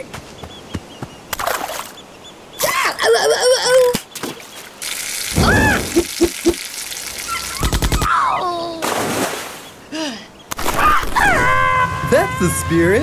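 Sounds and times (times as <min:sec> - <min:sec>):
cartoon water splashing: 0:03.7 - 0:08.1.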